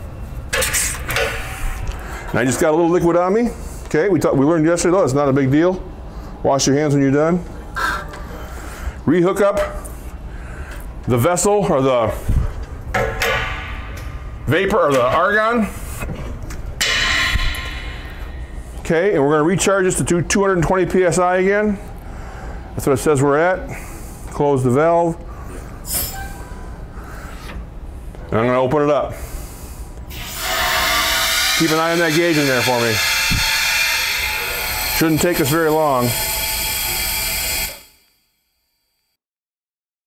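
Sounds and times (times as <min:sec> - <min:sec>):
pressurized gas hissing: 0:30.1 - 0:38.0
high whistling tones: 0:30.1 - 0:38.6.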